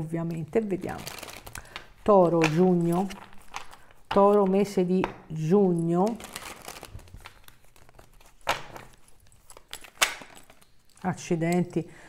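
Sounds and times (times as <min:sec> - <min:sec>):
cards rustling while shuffled: 0:00.2 - 0:05.1, 0:05.7 - 0:11.6.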